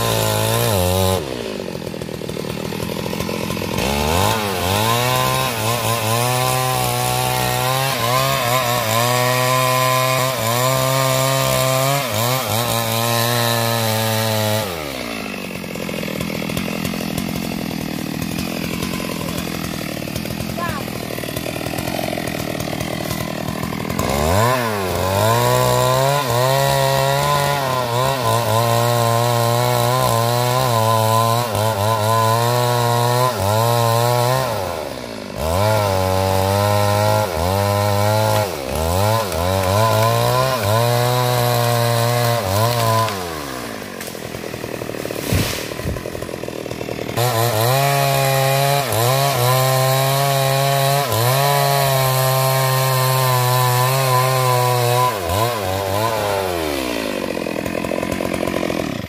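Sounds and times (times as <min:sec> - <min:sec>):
chainsaw cutting tree trunk: 0:00.0 - 0:59.0.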